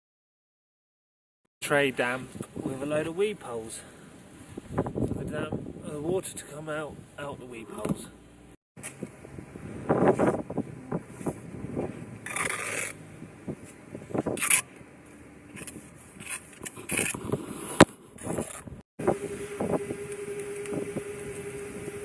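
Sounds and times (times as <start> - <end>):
trowel scraping mortar: 11.2 - 13.0, 13.6 - 14.8, 15.5 - 18.8
steady humming tone: 19.0 - 22.0.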